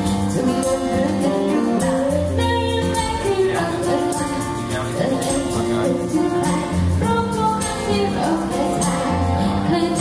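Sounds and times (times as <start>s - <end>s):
woman singing pop song: 0.0s - 10.0s.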